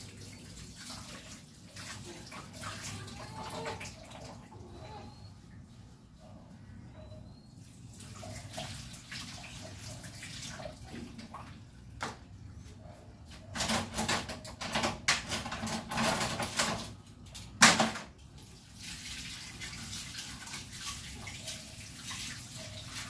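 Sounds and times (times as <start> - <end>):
water splashing in a sink: 0.0 - 5.2, 7.8 - 12.2, 13.6 - 23.0.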